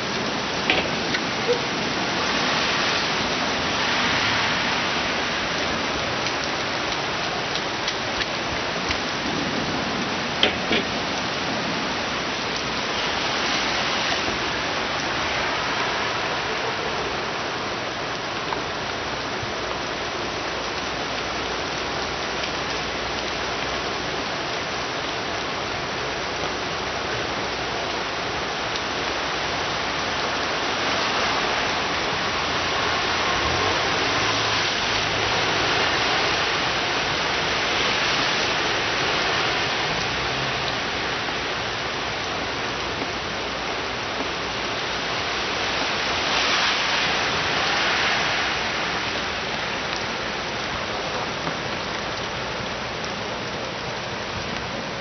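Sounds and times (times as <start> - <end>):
heavy rain on pavement: 0.0 - 55.0.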